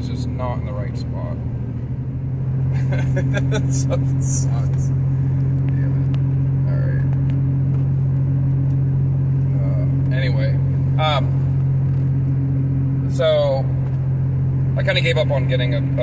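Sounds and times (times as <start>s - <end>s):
engine and road drone in cab: 0.0s - 16.0s.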